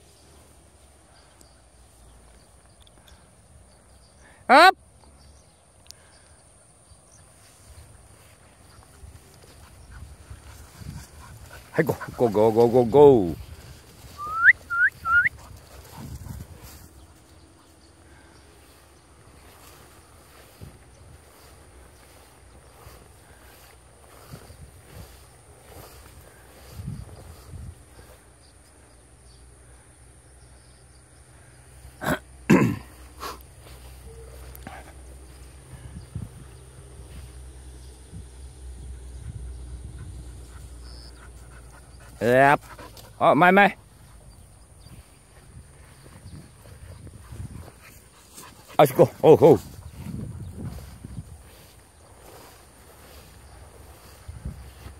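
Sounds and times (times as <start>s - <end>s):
man shouting a call: 4.5s - 4.8s
light wind on microphone: 9.0s - 12.2s, 15.3s - 16.9s, 35.6s - 37.4s, 44.8s - 48.0s, 49.6s - 51.8s, 52.4s - 54.9s
rising whistle-like chirp: 14.2s - 15.4s.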